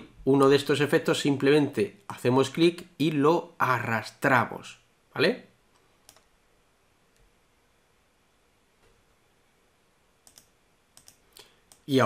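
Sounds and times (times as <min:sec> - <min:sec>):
computer mouse clicks: 0:05.7 - 0:06.3, 0:10.2 - 0:11.9.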